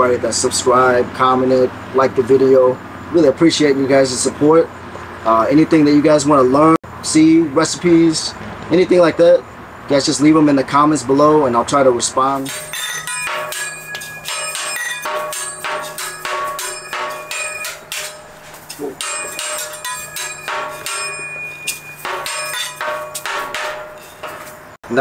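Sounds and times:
metal spatula clanging on metal cans: 12.4 - 24.8.

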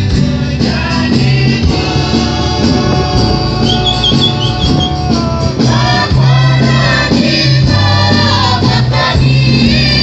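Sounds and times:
choir singing a hymn: 0.0 - 10.0
high wavering trill: 2.6 - 5.3.

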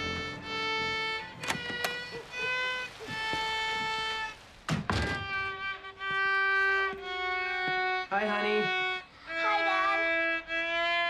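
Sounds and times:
heavy thunks: 0.0 - 6.3
violin music with held notes: 0.0 - 11.0.

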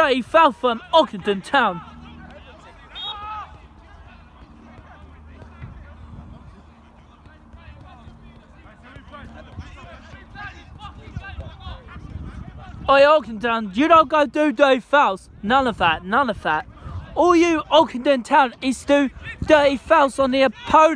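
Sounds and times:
distant players shouting: 0.0 - 12.8.

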